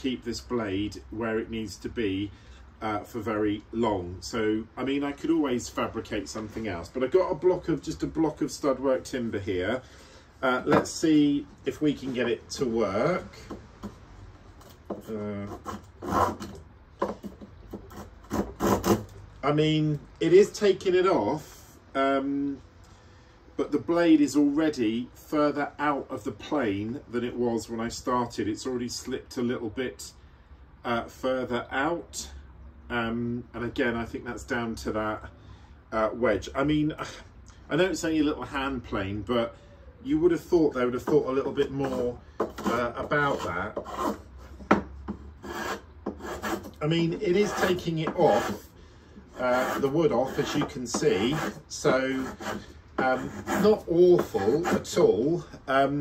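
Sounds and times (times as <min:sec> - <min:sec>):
hand plane rasping on wood: 0:15.3 - 0:16.6, 0:17.7 - 0:19.1, 0:41.0 - 0:48.7, 0:49.3 - 0:55.0.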